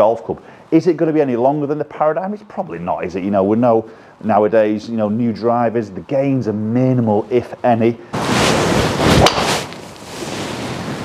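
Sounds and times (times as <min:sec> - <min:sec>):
steady rushing noise: 0:08.2 - 0:11.0.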